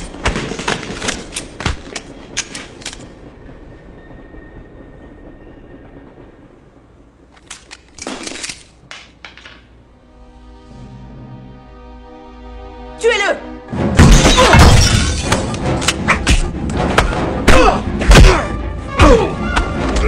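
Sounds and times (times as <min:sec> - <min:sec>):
music with sustained notes: 0:09.8 - 0:20.0.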